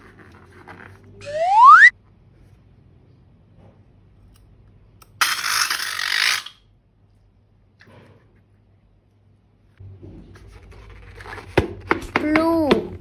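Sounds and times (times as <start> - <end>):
rising slide whistle: 1.2 - 1.9.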